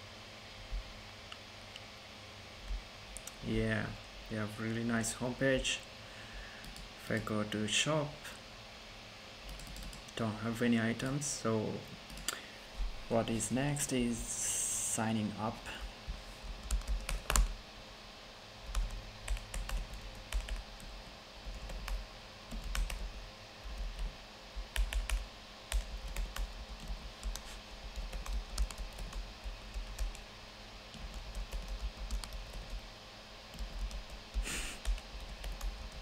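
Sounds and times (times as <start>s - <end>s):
computer keyboard typing: 9.5s - 10.1s, 16.6s - 17.5s, 18.6s - 20.9s, 21.5s - 24.1s, 24.7s - 30.2s, 30.9s - 32.8s, 33.5s - 36.0s.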